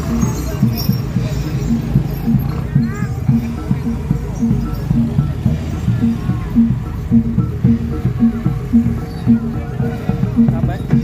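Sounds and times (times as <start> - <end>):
drum strokes: 0.0 - 11.0
gamelan music: 0.0 - 11.0.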